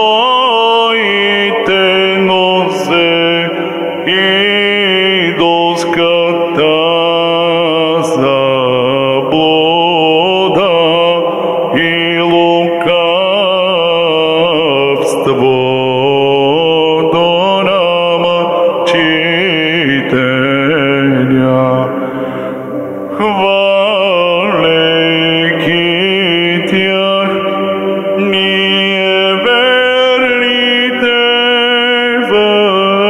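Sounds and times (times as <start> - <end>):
man chanting a hymn: 0.0 - 33.0.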